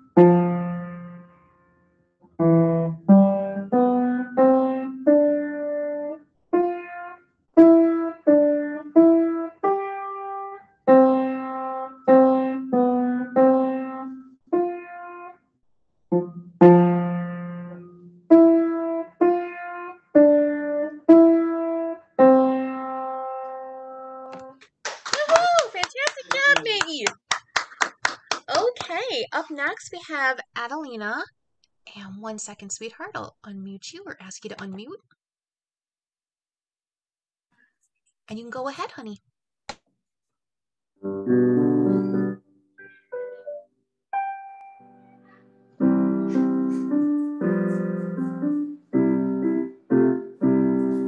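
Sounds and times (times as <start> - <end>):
child playing piano: 0.0 - 1.7, 2.4 - 15.4, 16.1 - 24.3, 41.0 - 51.0
hand clapping: 24.3 - 29.1.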